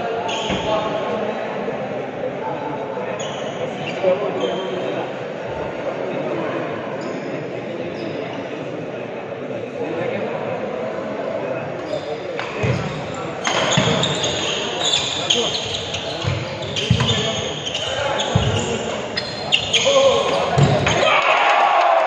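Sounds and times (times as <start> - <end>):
shoes squeaking: 11.8 - 21.0.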